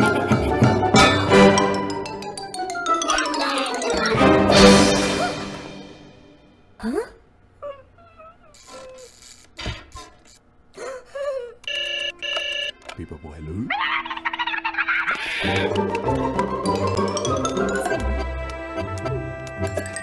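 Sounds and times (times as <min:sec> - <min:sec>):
cartoon music: 0:00.0 - 0:06.4, 0:12.1 - 0:20.0
cartoon sound effects with rising glides: 0:02.4 - 0:05.8.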